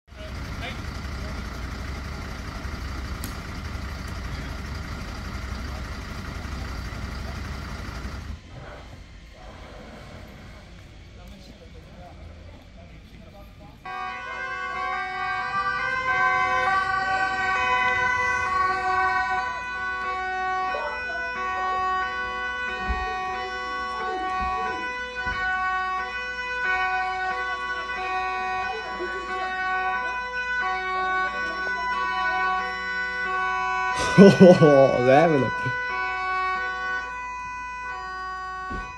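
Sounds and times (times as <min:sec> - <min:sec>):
loud outdoor noise: 0:00.0 - 0:38.9.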